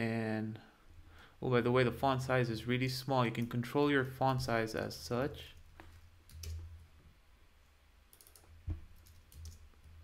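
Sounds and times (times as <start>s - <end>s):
low steady hum: 0.0s - 10.0s
computer keyboard key clicks: 8.2s - 9.6s.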